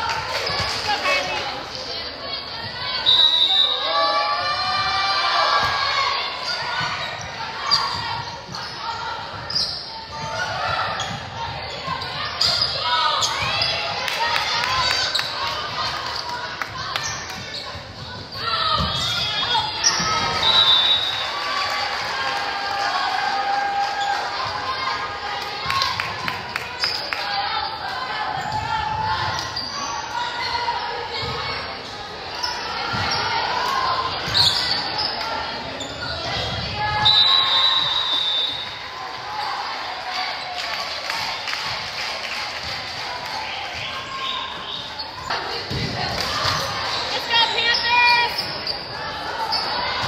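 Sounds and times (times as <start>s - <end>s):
players and spectators shouting: 0.0s - 50.0s.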